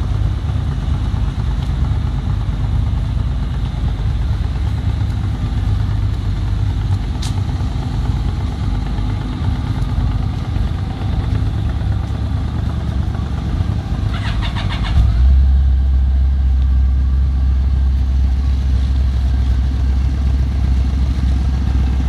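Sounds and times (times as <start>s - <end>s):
motorcycle engines idling: 0.0s - 22.0s
motorcycle engine starting: 6.5s - 16.4s.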